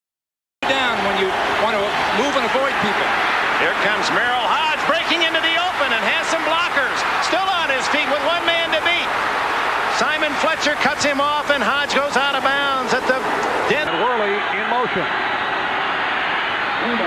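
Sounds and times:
stadium crowd cheering and shouting: 0.6 - 17.0.

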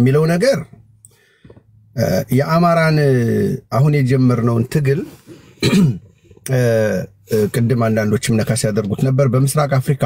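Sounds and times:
person clearing throat: 5.5 - 6.1.

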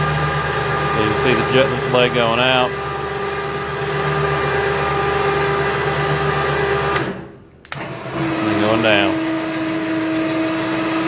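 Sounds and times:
electric winch motor whining: 0.0 - 7.1, 7.8 - 11.0.

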